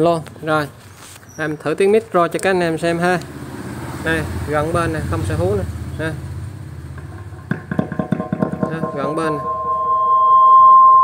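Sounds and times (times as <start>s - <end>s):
microphone feedback stutter: 8.9s - 11.0s.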